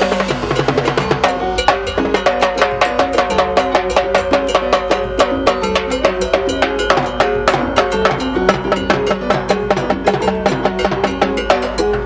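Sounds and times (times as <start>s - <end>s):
cowbell and timbales rhythm: 0.0s - 12.0s
mambo band playing: 0.0s - 12.0s.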